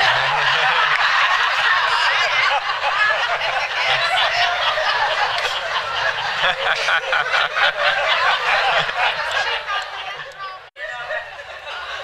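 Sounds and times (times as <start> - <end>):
audience laughing: 0.0 - 12.0.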